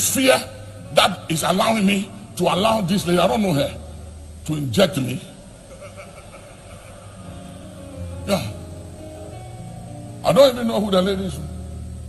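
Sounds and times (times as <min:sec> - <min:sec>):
steady low hum: 0:00.0 - 0:12.0
held keyboard chords: 0:06.9 - 0:12.0.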